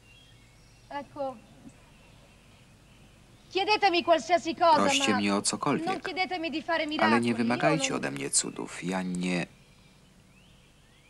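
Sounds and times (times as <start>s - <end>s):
person's short utterance: 7.0s - 8.2s.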